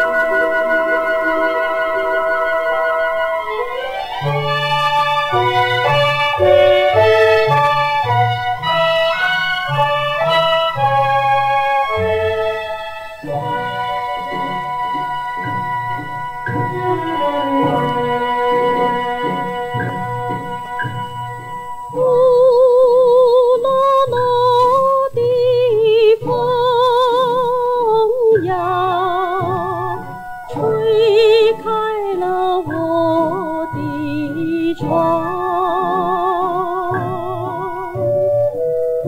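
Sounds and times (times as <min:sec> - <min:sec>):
small orchestra with low beat: 0:00.0 - 0:39.0
woman singing with vibrato: 0:16.6 - 0:20.6, 0:21.8 - 0:38.5.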